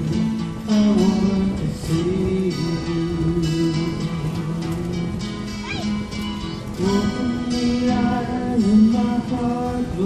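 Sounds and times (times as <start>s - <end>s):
acoustic guitars strumming: 0.0s - 10.0s.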